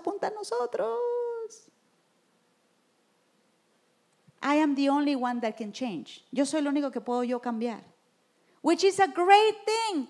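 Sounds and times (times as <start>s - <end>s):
woman speaking: 0.0s - 1.7s, 4.4s - 8.0s, 8.6s - 10.0s.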